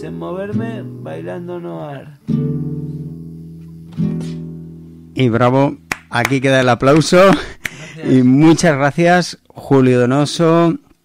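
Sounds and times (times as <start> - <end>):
acoustic guitar chords: 0.0 - 8.7.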